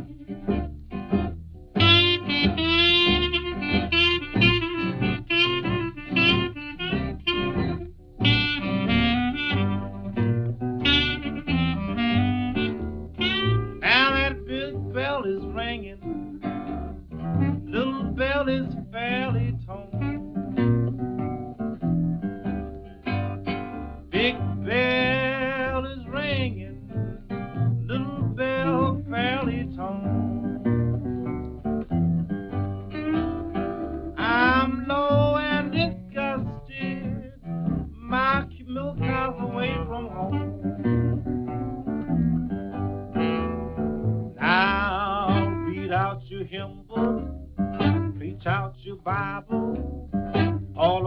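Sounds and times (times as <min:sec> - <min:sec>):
plucked guitar: 0:00.0 - 0:51.0
lead melody with vibrato: 0:27.0 - 0:36.1.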